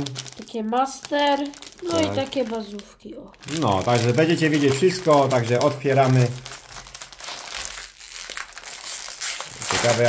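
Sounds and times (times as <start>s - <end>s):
plastic foil bag crinkling: 0.0s - 10.0s.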